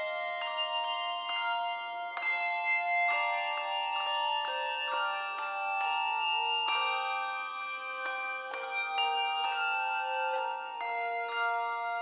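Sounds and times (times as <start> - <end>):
handbell choir ringing chords: 0.0 - 12.0.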